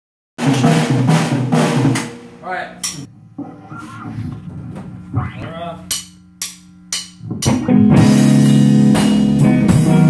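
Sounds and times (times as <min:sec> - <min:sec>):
drum kit crashes: 0:03.4 - 0:10.0
rock band playing loudly: 0:07.2 - 0:10.0.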